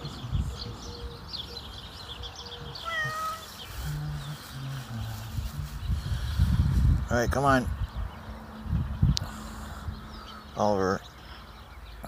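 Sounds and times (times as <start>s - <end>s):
birds chirping: 0.0s - 12.0s
cat meowing: 2.8s - 3.5s.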